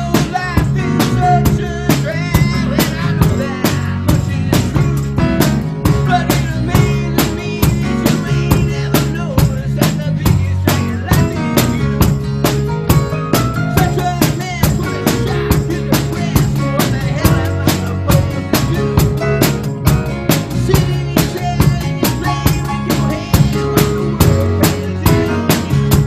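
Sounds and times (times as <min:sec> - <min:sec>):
bass guitar: 0:00.0 - 0:26.0
drum kit beat: 0:00.0 - 0:26.0
strummed acoustic guitars: 0:00.0 - 0:26.0.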